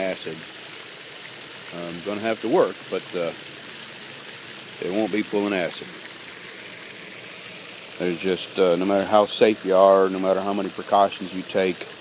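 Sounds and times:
fountain water splashing on pond: 0.0 - 12.0.

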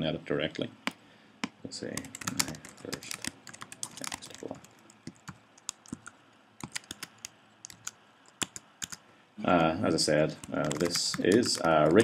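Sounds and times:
keyboard typing: 1.4 - 12.0.

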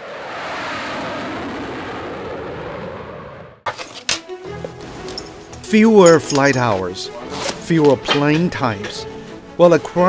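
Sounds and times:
jet engines rushing: 0.0 - 3.6.

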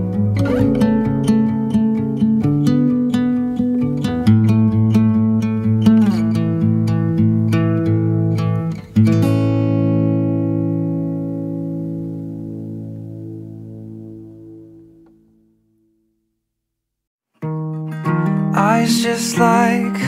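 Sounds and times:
acoustic guitar picking: 0.0 - 15.4, 17.4 - 20.0.

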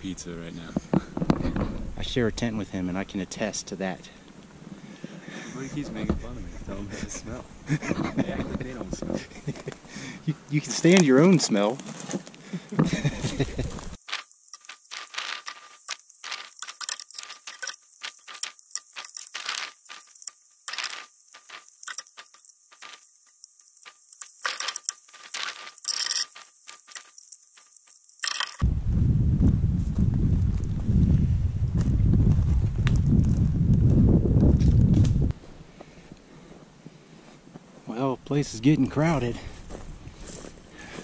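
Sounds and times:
tent nylon crackling and rustling: 13.1 - 27.7
low rumble on microphone: 28.6 - 35.4.

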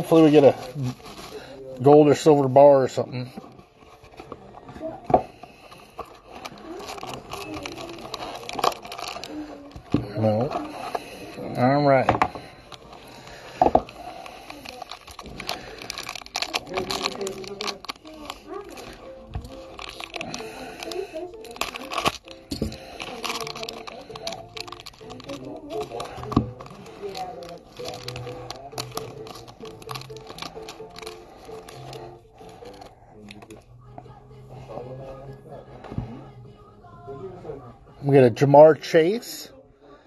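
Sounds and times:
background music: 0.0 - 40.0
foil pack crinkling and tearing: 5.4 - 11.4, 12.4 - 33.5.

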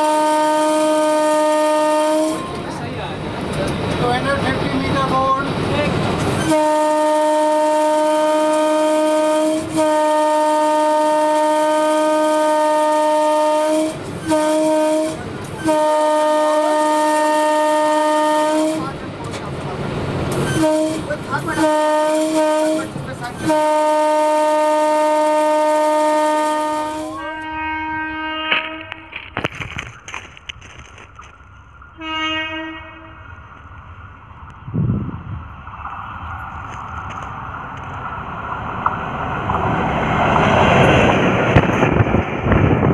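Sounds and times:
locomotive horn blasts: 0.0 - 2.6, 6.3 - 19.0, 20.4 - 29.3, 31.9 - 33.2.

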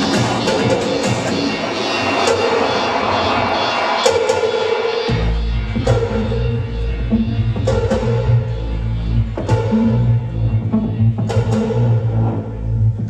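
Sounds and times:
loud electronic dance music: 0.0 - 13.0
heavy bass line: 5.0 - 13.0.

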